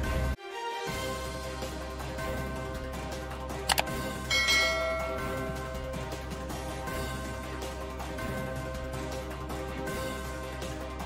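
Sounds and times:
background music: 0:00.0 - 0:11.0
mouse double click: 0:03.7 - 0:03.9
notification bell chime: 0:04.3 - 0:05.9.

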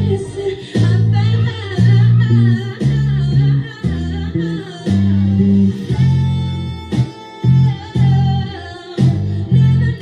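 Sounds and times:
electric bass plucked fingerstyle: 0:00.0 - 0:10.0
r and b song with singing: 0:00.0 - 0:10.0.

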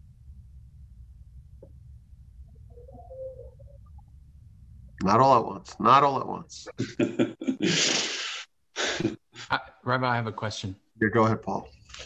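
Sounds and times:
low background hum: 0:00.0 - 0:12.0
faint murmur: 0:02.5 - 0:04.0.

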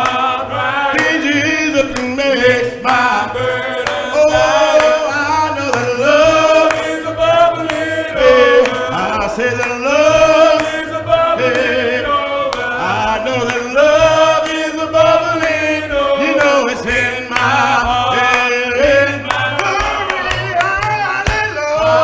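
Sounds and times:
low steady accompaniment: 0:00.0 - 0:22.0
man singing gospel song: 0:00.0 - 0:22.0.

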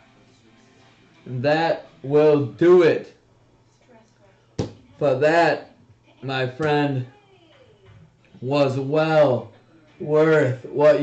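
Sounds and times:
object knocked down on tabletop: 0:04.6 - 0:04.8.

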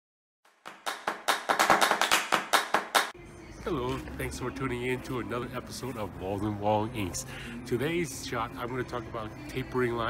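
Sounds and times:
rapid sharp percussive hits: 0:00.5 - 0:03.1.

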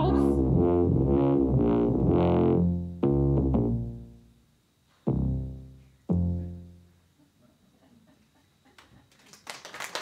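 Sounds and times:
sustained electronic chords: 0:00.0 - 0:04.5, 0:05.1 - 0:07.0.

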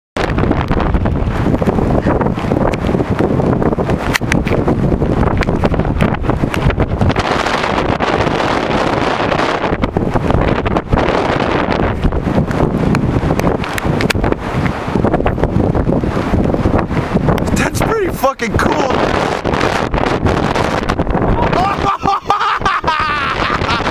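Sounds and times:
wind buffeting microphone: 0:00.2 - 0:23.9.

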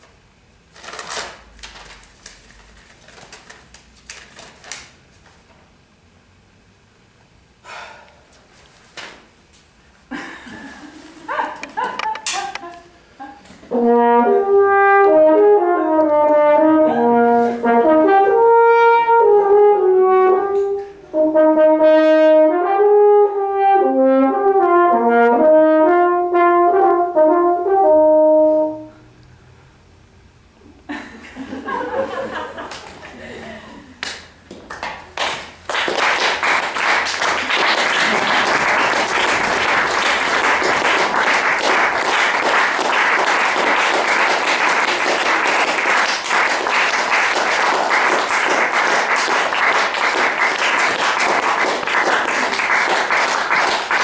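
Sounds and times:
french horn solo melody: 0:13.7 - 0:29.1.

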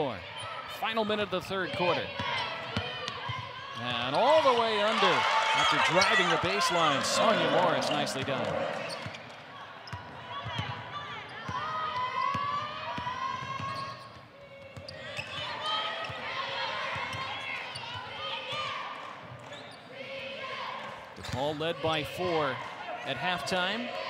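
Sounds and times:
players and crowd voices: 0:00.0 - 0:24.0.

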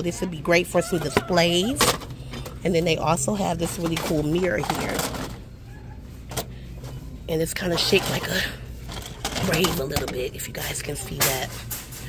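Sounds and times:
low shop hum: 0:00.0 - 0:12.0.

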